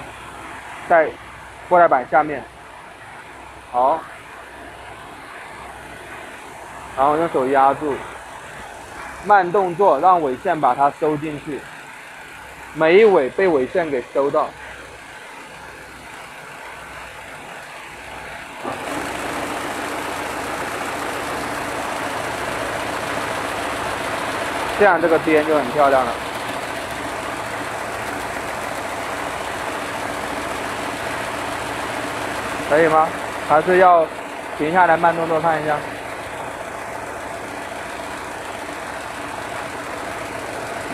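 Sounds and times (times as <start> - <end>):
loom running: 15.5 - 40.9.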